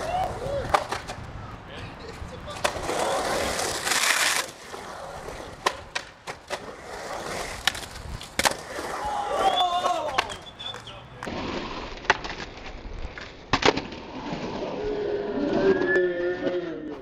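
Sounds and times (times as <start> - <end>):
skateboard clacking: 0.0 - 1.3, 2.1 - 11.4
skateboard scraping: 0.0 - 17.0
skateboard wheels rolling on concrete: 0.0 - 17.0
voices calling out: 8.7 - 11.3.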